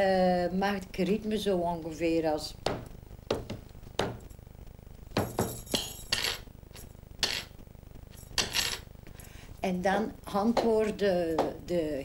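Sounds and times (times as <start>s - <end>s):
hand knocking on wooden tabletop: 2.6s - 4.2s.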